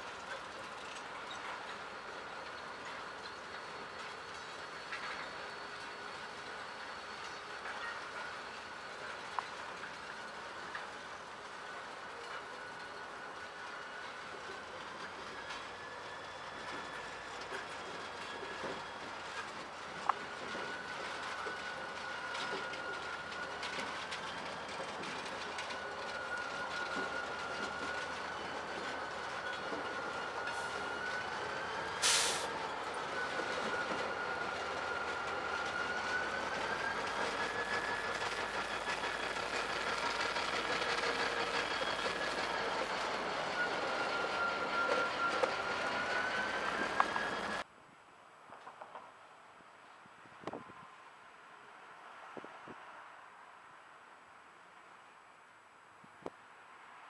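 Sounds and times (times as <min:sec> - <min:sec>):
diesel locomotive rolling past: 0:00.0 - 0:47.7
wheels squealing on rail: 0:00.0 - 0:47.7.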